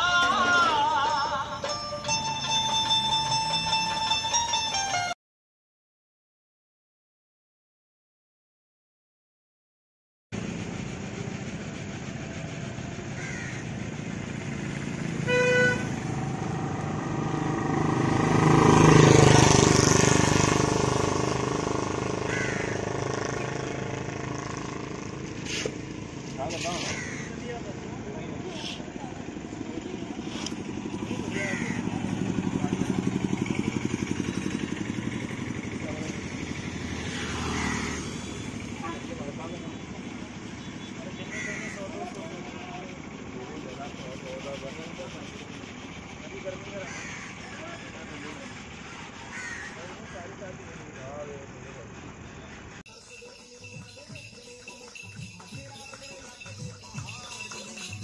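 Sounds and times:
road traffic passing: 0.0 - 5.2, 10.3 - 58.0
vehicle passing close by: 10.4 - 52.8
short horn toot: 15.2 - 16.1.

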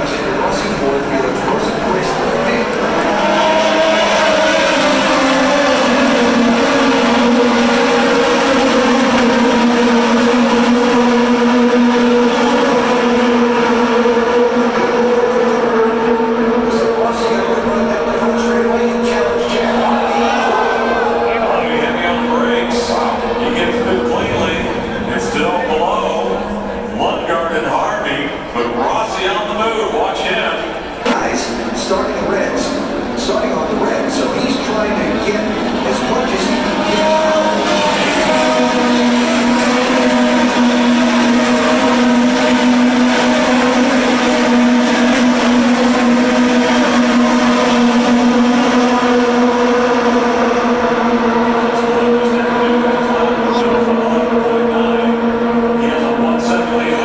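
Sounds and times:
spectator chatter: 0.0 - 9.1, 16.6 - 43.1, 51.0 - 57.0
race car engines: 0.0 - 57.0.

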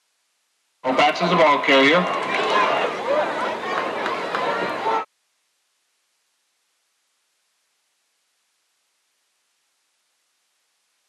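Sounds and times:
crowd noise: 0.8 - 5.1.

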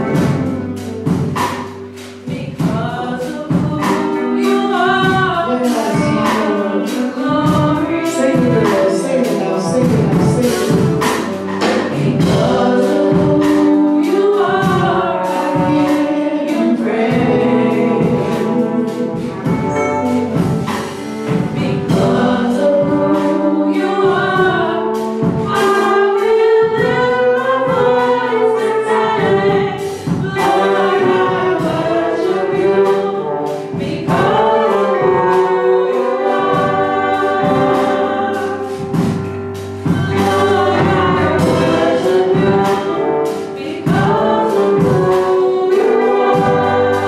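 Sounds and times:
brass band playing: 0.0 - 47.0
drums beating: 0.0 - 47.0
women singing gospel: 2.2 - 47.0.

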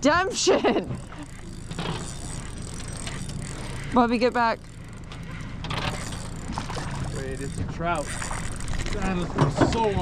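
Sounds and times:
fishing reel ticking: 0.0 - 10.0.

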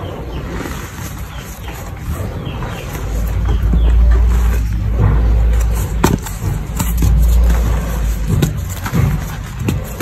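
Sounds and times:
low background rumble: 0.0 - 10.0
chalk block crunching: 5.5 - 10.0.

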